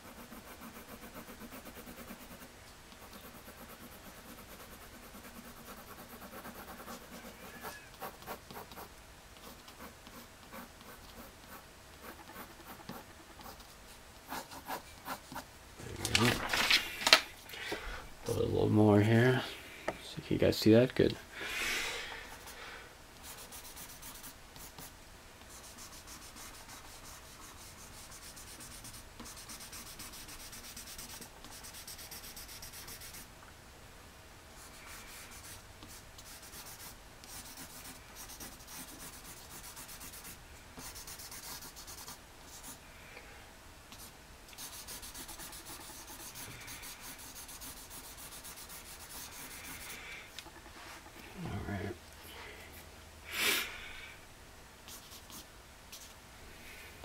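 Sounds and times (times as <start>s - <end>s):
pencil scratching on paper: 0.0s - 13.7s, 14.3s - 15.4s, 23.2s - 24.9s, 25.5s - 33.3s, 34.6s - 42.8s, 43.9s - 50.7s.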